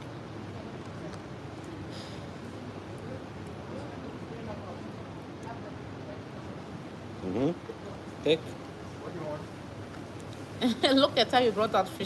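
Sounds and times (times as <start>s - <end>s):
open-air ambience hiss: 0.0s - 12.0s
short voiced sound bending in pitch: 7.2s - 7.6s.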